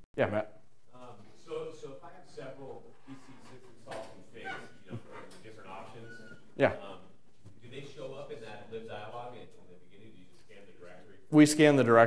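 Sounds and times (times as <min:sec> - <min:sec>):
room tone: 0:00.2 - 0:12.0.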